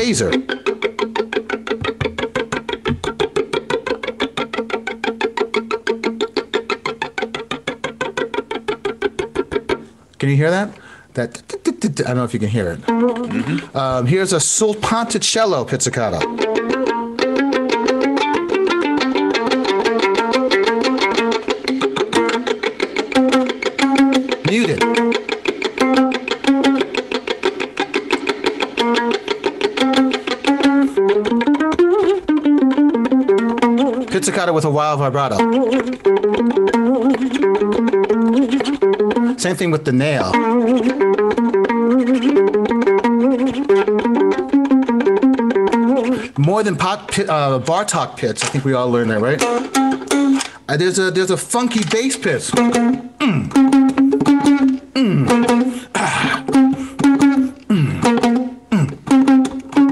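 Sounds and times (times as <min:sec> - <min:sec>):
violin pizzicato: 0:12.7 - 0:14.1, 0:16.0 - 0:47.1, 0:51.8 - 0:59.9.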